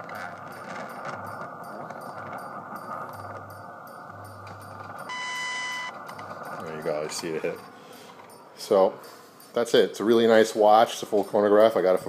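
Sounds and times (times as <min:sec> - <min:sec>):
time signal pulses: 0:00.0 - 0:09.7
high steady radio tone: 0:05.1 - 0:07.3.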